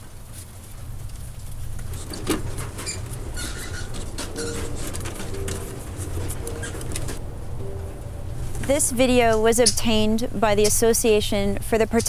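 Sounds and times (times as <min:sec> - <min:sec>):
brief high squeak: 0:02.8 - 0:05.5
steady low rumble: 0:04.8 - 0:10.6.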